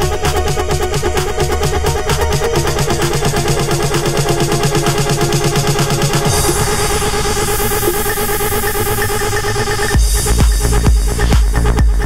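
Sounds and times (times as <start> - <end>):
electro house music: 0.0 - 12.0.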